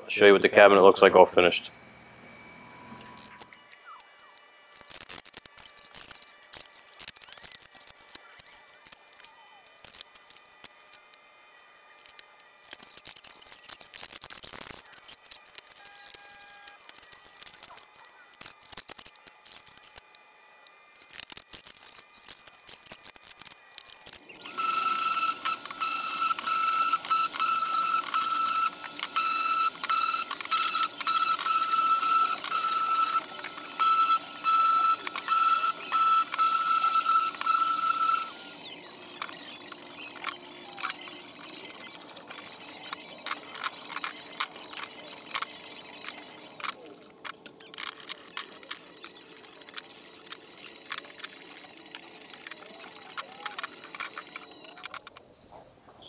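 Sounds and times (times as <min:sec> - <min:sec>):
sander high whine: 0:24.2 - 0:46.6.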